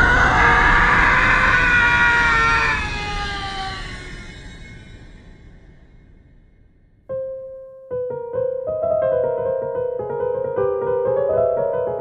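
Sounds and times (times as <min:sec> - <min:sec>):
long loud scream: 0:00.0 - 0:04.8.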